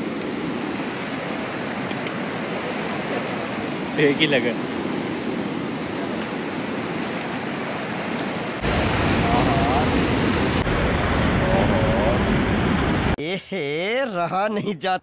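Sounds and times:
rushing mountain river: 0.0 - 13.2
man speaking: 13.2 - 15.0.

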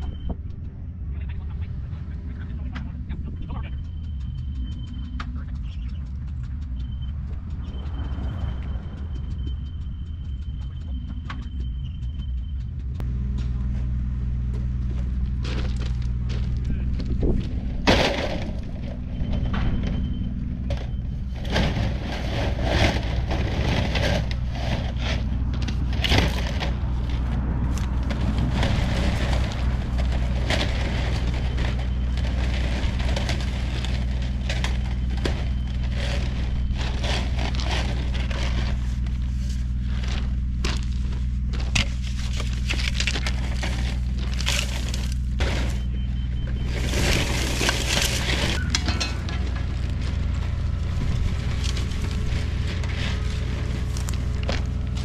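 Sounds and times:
steady engine hum: 0.0 - 55.0
footsteps crunching on gravel: 13.3 - 19.1, 25.3 - 55.0
plastic pipe crackling: 21.2 - 55.0.

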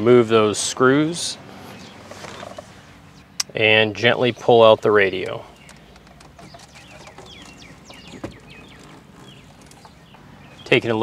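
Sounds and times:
small birds chirping: 1.5 - 11.0.

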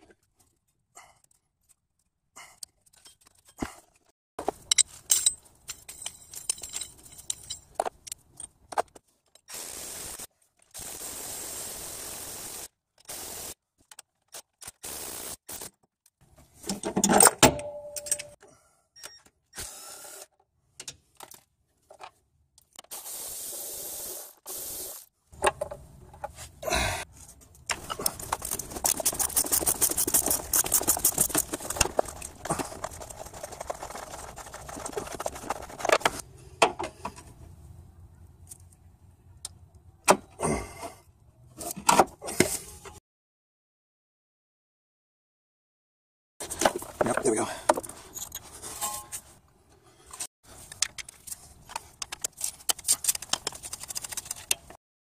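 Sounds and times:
metal tools clinking on engine parts: 4.5 - 8.6, 16.7 - 18.4, 47.7 - 49.2
fast run of clicks: 27.7 - 36.2, 50.6 - 54.8.

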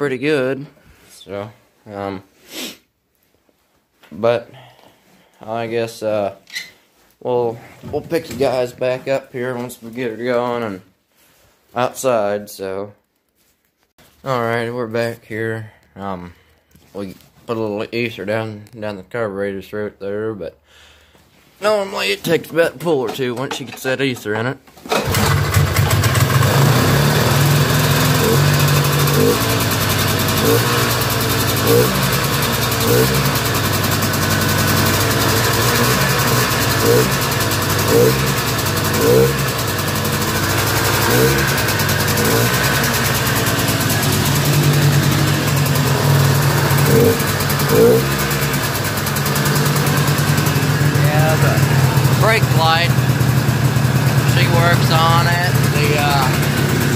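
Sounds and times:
two-stroke snowmobile engine revving: 24.9 - 56.9.

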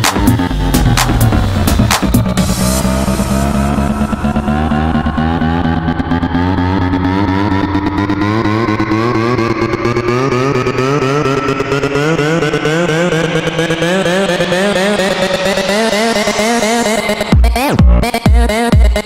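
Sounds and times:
rising synth line: 0.0 - 18.0
electro house music: 0.0 - 19.0.

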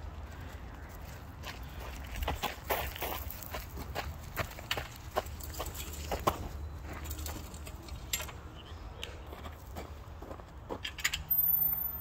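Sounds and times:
footsteps on paved path: 0.0 - 7.8, 9.0 - 10.9.

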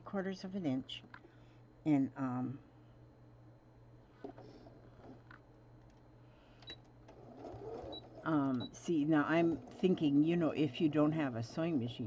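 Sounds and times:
sewing machine humming: 7.1 - 10.3.

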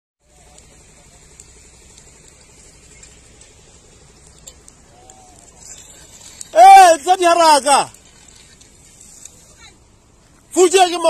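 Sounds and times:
crackling of burning tyres: 0.2 - 11.0
low steady background noise: 0.2 - 11.0.

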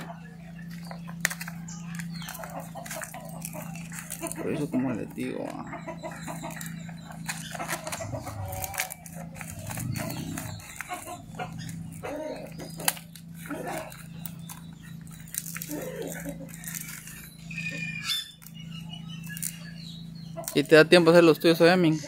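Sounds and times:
steady low hum: 0.0 - 22.0
leaves crackling and rustling: 0.7 - 5.6, 6.2 - 17.3.

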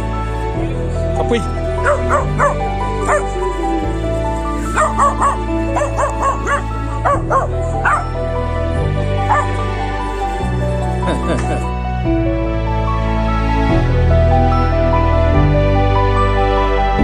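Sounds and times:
background music: 0.0 - 17.0
puppy yipping barks: 1.8 - 3.3, 4.7 - 8.0, 9.3 - 9.6.

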